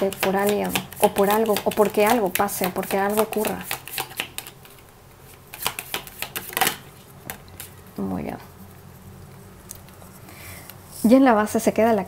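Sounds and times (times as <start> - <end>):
cards being shuffled: 0.1 - 7.8.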